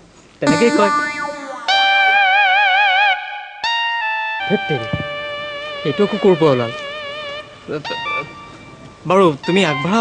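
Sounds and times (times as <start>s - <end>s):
held note with wide vibrato: 0.4s - 3.8s.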